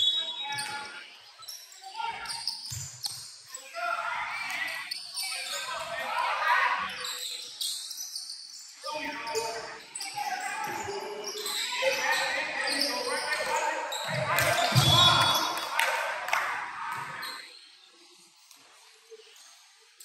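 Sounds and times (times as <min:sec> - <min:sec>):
shoe squeaks: 0:00.0 - 0:03.7, 0:04.4 - 0:05.8, 0:06.5 - 0:15.6, 0:17.2 - 0:17.8
voices of players and spectators: 0:00.0 - 0:20.0.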